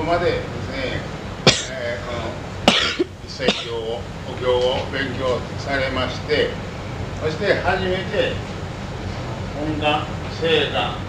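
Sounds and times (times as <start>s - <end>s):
person coughing: 1.5s - 1.8s, 2.7s - 3.8s.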